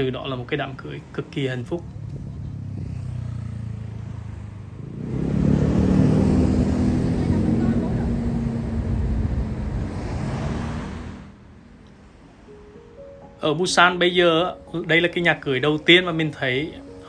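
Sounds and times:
vehicle engine running close by: 1.6s - 11.4s.

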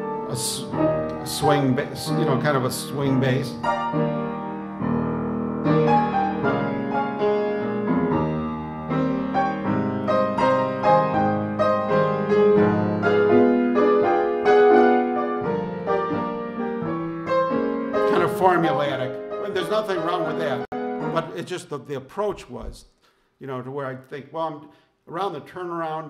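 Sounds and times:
solo jazz piano: 0.0s - 21.6s.

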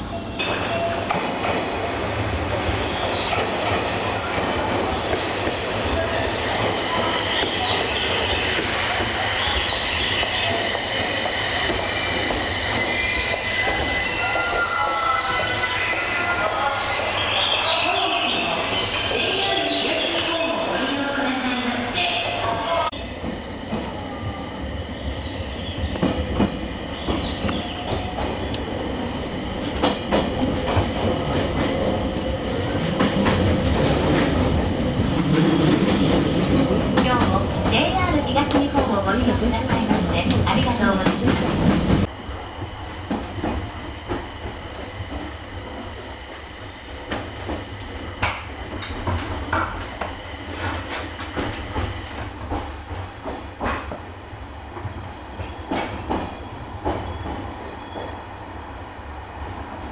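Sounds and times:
train wheels squealing: 6.0s - 22.0s, 55.4s - 58.2s.

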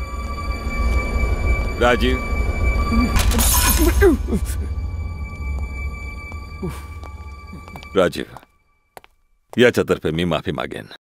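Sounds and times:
low film soundtrack: 0.0s - 10.5s
glass shattering: 3.2s - 4.2s.

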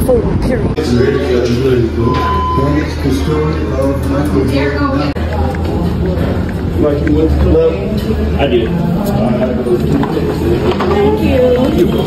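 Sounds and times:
voices talking: 0.0s - 12.0s
short beep: 2.0s - 3.0s.

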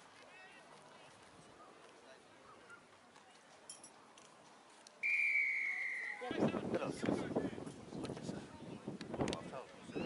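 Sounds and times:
referee's whistle blast: 5.0s - 6.3s.

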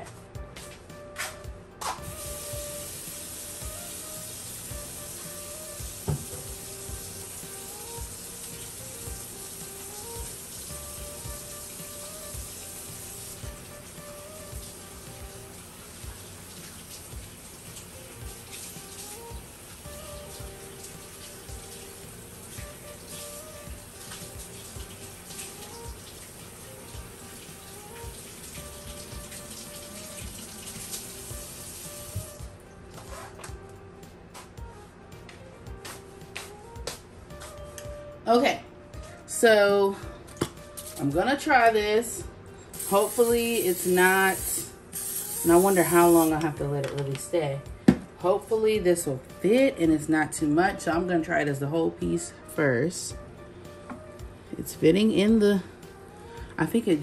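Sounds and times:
soft background music: 0.0s - 57.0s
tap water running into sink: 2.0s - 32.4s.

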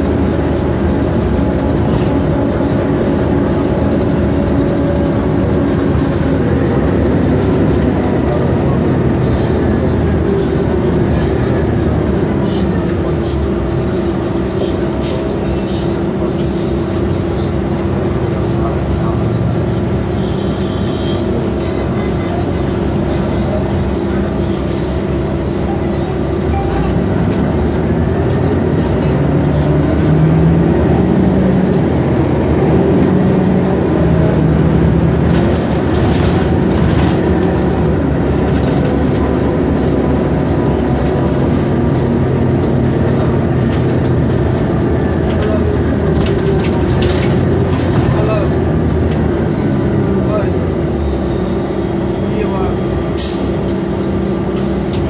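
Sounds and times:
bus engine droning: 0.0s - 55.0s.

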